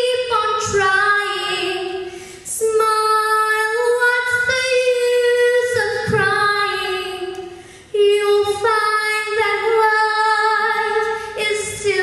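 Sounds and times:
girl singing into a microphone: 0.0 - 12.0.

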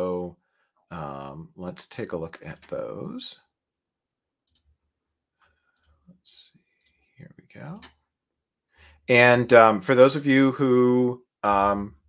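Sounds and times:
faint clicks: 4.4 - 4.7.

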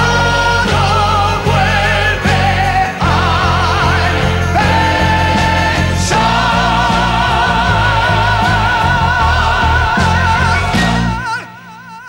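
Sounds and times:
orchestral bass chords: 0.0 - 11.3
choir singing with vibrato: 0.0 - 12.0.

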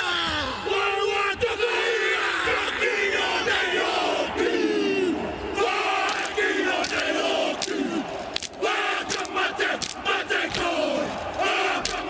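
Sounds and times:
crowd chanting and calling out: 0.0 - 12.0.

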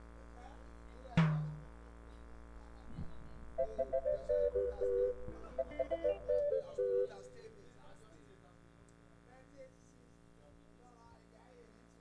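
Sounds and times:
instrumental jingle: 3.6 - 7.6.

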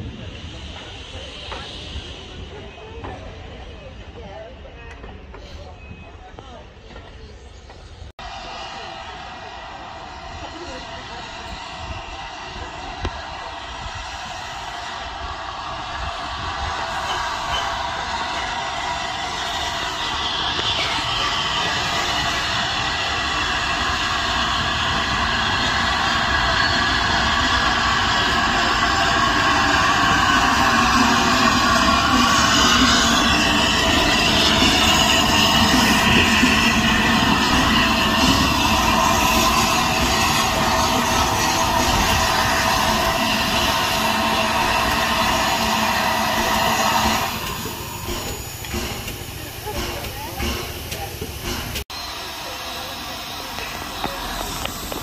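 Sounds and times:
steam locomotive running slowly: 0.0 - 55.0.

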